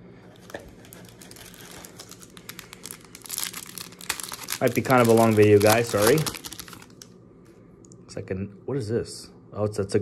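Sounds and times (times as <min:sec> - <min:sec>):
plastic wrapper crinkling: 0:00.3 - 0:07.2.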